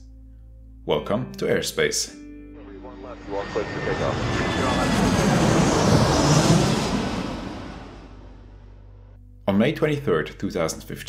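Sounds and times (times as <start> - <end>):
jet aircraft flying past: 2.6 - 8.9.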